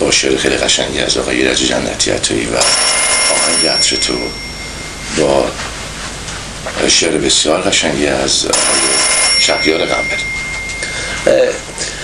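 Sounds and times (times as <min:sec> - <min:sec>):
faint high whine: 0:00.0 - 0:12.0
room noise: 0:00.0 - 0:12.0.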